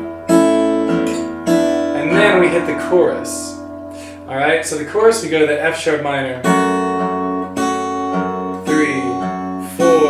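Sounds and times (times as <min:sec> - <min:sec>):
acoustic guitar chords plucked: 0:00.0 - 0:10.0.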